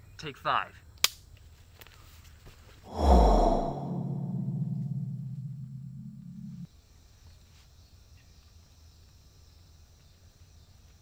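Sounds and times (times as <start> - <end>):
low steady hum: 2.9 - 6.7.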